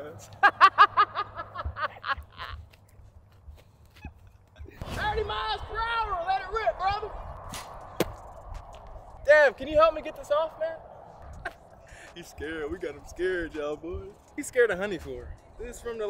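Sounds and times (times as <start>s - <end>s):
man laughing: 0.2s - 2.8s, 11.2s - 12.0s.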